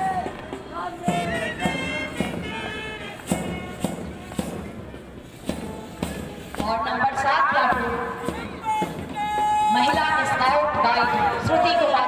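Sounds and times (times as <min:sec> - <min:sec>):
march music: 0:00.0 - 0:12.0
steady drum beat: 0:00.0 - 0:12.0.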